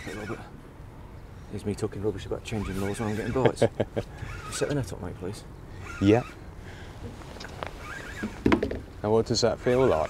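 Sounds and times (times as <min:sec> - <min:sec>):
outdoor background sound: 0:00.0 - 0:10.0.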